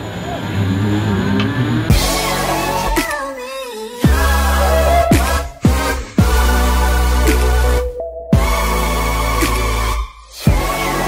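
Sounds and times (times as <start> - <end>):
music with wavering melody: 1.9 - 3.4, 4.0 - 11.0.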